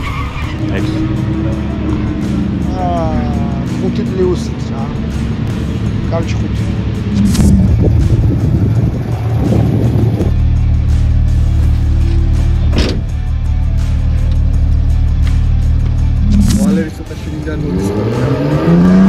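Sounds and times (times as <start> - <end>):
car engine idling: 0.0 - 18.1.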